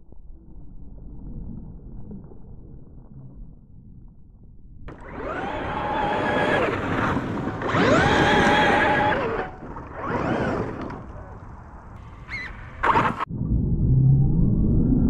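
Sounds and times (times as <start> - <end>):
electric motor whining: 4.9 - 11.4.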